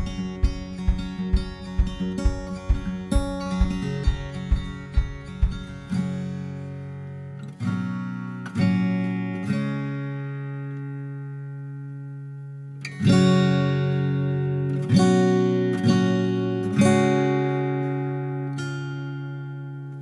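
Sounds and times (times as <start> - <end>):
acoustic guitar picking: 0.0 - 20.0.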